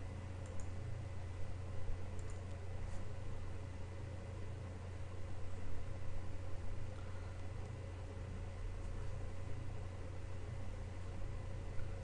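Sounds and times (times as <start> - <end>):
low electrical hum: 0.0 - 12.0
computer mouse clicks: 0.4 - 0.8, 2.1 - 2.6.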